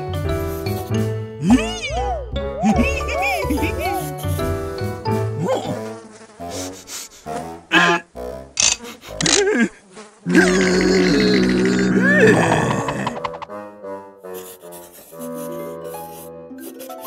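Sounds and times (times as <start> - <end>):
fly-like buzzing: 3.0 - 10.6, 14.2 - 17.0
gagging retching voice: 7.7 - 13.4.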